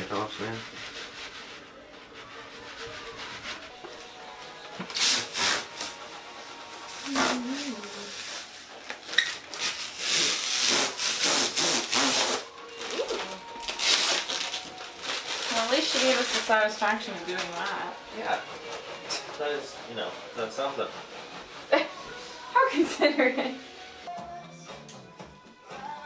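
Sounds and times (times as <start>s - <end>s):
rubbing and scraping while cleaning: 0.0s - 24.1s
plastic film being peeled off: 4.8s - 17.9s.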